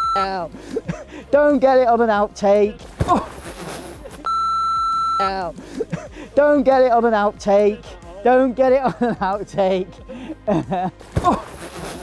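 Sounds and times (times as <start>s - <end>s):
electronic censor bleep: 0.0s - 0.4s, 4.2s - 5.4s.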